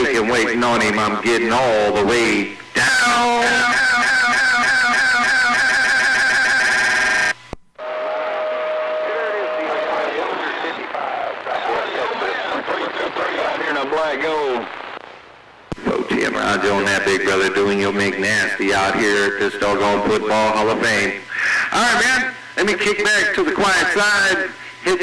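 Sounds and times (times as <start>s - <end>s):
garbled radio voices: 0.0s - 7.3s, 9.0s - 15.1s, 15.7s - 25.0s
warbling radio transmission: 0.0s - 15.2s, 15.8s - 25.0s
radio whistle: 2.8s - 13.7s.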